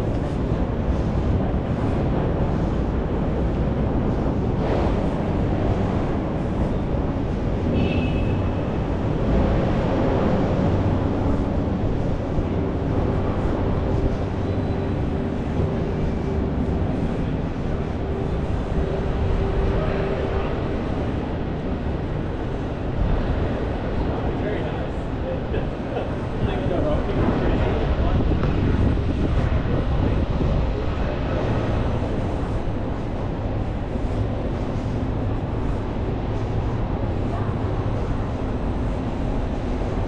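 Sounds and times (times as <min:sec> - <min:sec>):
traffic rumble: 0:00.0 - 0:40.0.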